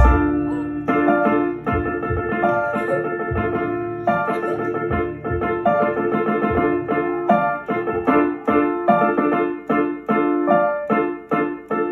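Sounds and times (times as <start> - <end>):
digital piano chords and melody: 0.0 - 11.9.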